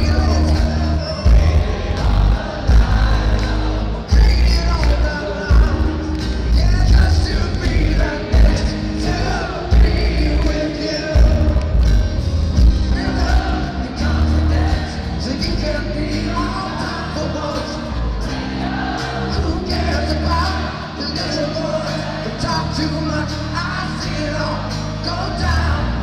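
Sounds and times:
heavy low end pulsing: 0.0 - 4.8
lead vocal singing: 0.0 - 26.0
rock band playing live: 0.0 - 26.0.

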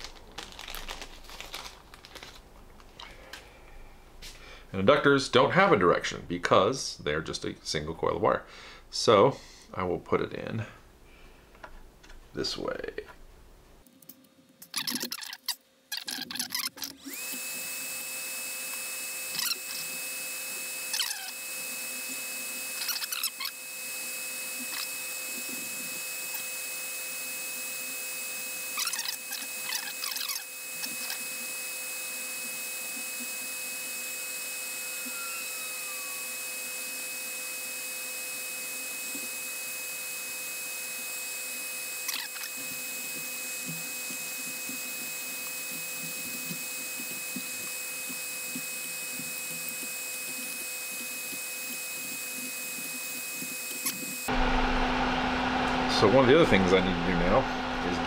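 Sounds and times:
faint brief squeaks: 14.7 - 16.9
thin high whine: 14.7 - 58.0.

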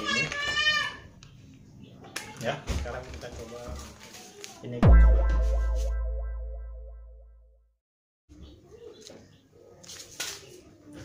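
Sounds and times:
distorted electric guitar chord: 4.8 - 7.0
deep bass boom: 4.8 - 7.5.

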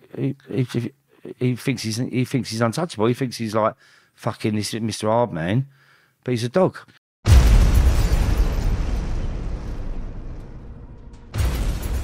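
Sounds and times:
explosion boom and rumble: 7.3 - 12.0.

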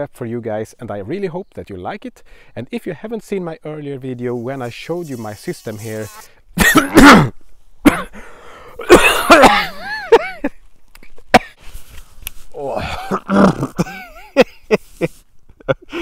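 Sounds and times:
man coughing and clearing throat: 6.6 - 8.2, 8.8 - 10.5, 11.3 - 11.6, 12.7 - 14.4
laughter: 8.9 - 10.6, 12.8 - 16.0.

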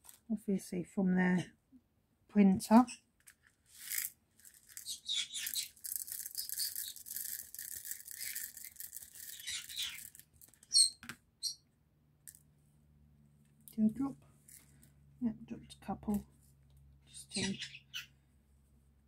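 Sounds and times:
small plastic beads rattling on a tray: 3.7 - 10.7.

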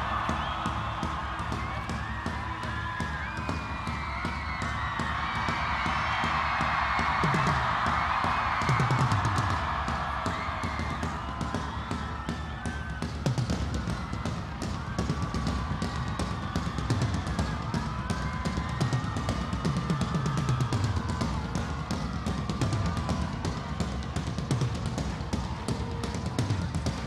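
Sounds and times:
rock drum kit playing fast beat: 0.0 - 27.0.

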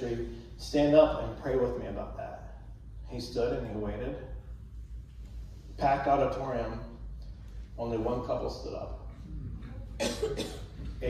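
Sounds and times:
person coughing: 9.6 - 10.9.

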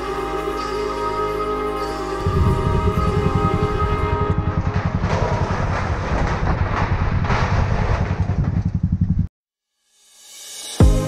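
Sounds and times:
background music: 0.0 - 4.9, 10.6 - 11.0
motorcycle engine running: 2.2 - 6.8, 7.9 - 9.3
rushing noise: 2.2 - 8.8
bridge deck rattling: 2.2 - 9.3.

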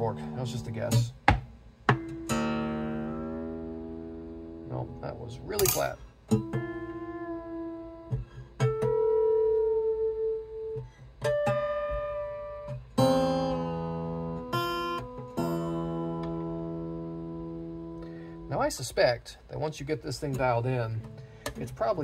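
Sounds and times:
acoustic guitar strings plucked: 0.0 - 18.6.

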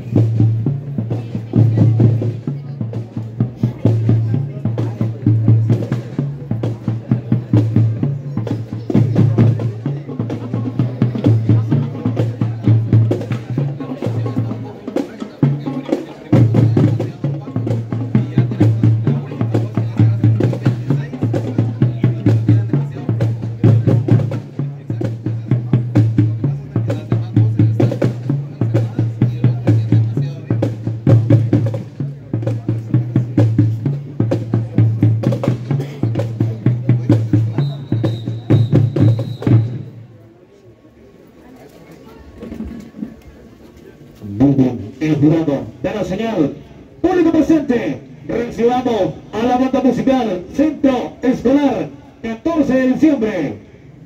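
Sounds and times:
snare and bass drums march rhythm: 0.0 - 40.1
marching band playing: 0.0 - 40.2, 44.2 - 53.6.

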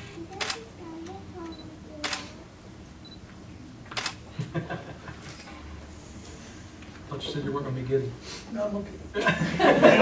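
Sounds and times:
camera shutter clicking: 0.3 - 0.6, 2.0 - 2.3, 3.9 - 4.2
small clicks: 0.3 - 0.6.

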